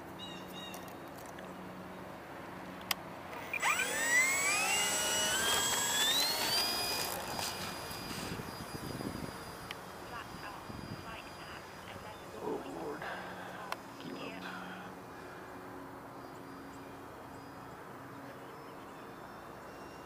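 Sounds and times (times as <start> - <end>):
model plane motor whine: 3.3 - 12.9.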